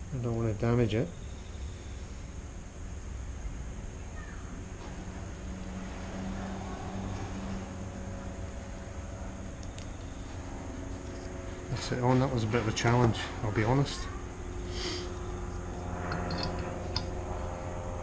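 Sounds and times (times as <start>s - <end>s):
faint droning tone: 0.0s - 18.0s
low background hum: 0.0s - 18.0s.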